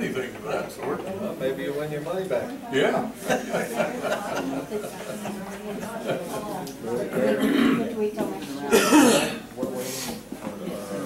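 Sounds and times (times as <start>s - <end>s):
person coughing: 7.4s - 7.9s, 8.7s - 9.4s.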